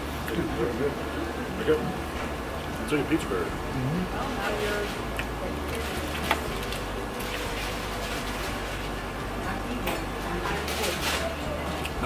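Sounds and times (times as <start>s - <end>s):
steady low hum: 0.0s - 12.0s
clinks and rustles of food baskets: 4.4s - 12.0s.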